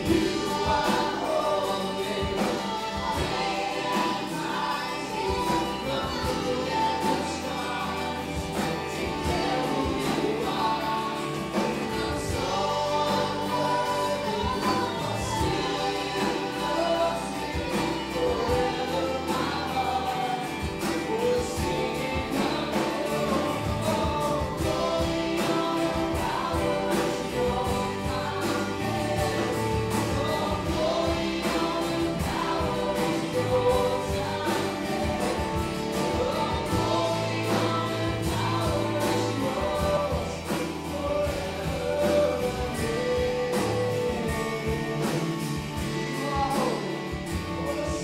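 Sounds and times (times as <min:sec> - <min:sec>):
live band playing: 0:00.0 - 0:48.0
voices singing together: 0:00.0 - 0:48.0.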